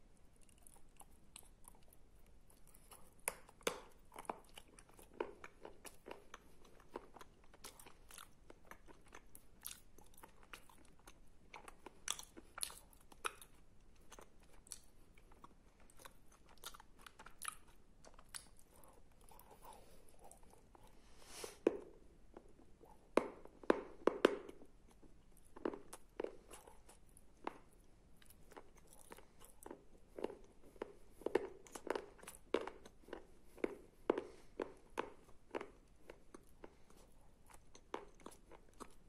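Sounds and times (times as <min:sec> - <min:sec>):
chewing crunchy clay: 0:00.3 - 0:21.0, 0:21.6 - 0:39.0.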